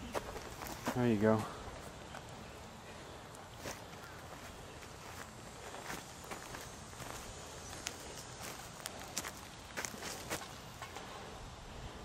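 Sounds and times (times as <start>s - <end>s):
footsteps crunching on mulch: 0.0s - 2.2s, 3.6s - 10.6s.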